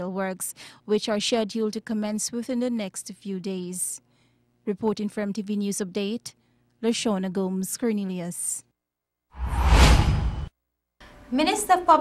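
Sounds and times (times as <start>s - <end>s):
transition whoosh with low rumble: 9.4s - 10.5s.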